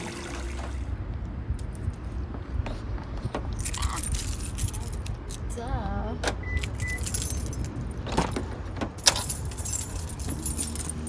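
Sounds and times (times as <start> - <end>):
keys jangling: 3.5 - 5.5, 6.6 - 11.0
car door opening: 8.0 - 9.5.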